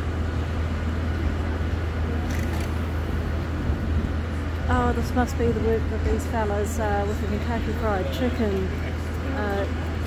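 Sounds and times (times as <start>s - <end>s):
crane engine droning: 0.0s - 10.0s.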